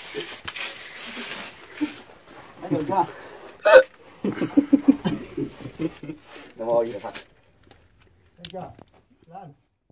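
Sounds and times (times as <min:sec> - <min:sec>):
person crying out: 0:03.6 - 0:03.9.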